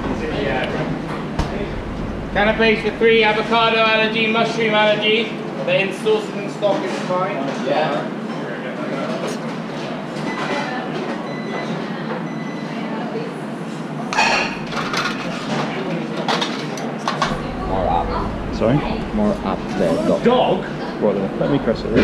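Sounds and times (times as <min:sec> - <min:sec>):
busy kitchen din: 0:00.0 - 0:22.0
faint voices: 0:08.4 - 0:22.0.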